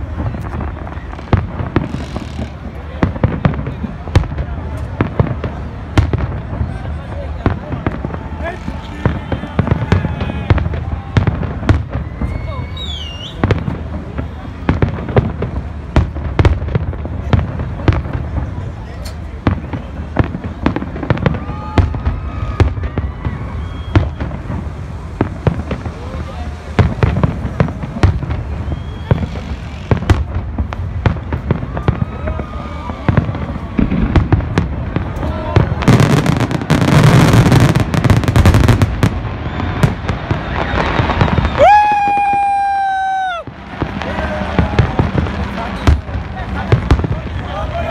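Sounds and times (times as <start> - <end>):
fireworks bangs and pops: 0.0 - 47.9
fireworks crackling: 0.0 - 47.9
firework whistle: 7.8 - 14.8, 21.2 - 30.4, 31.1 - 46.1.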